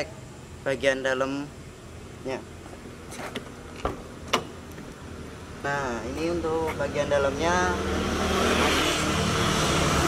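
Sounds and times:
vehicle passing by: 6.4s - 10.0s.

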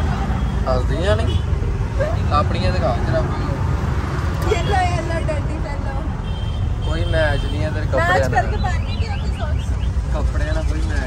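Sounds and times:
auto-rickshaw engine rumble: 0.0s - 11.0s
wordless voices: 6.8s - 11.0s.

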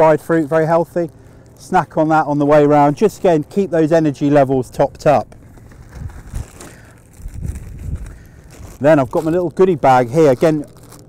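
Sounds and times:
fabric and plastic bag rustling: 5.0s - 11.0s.

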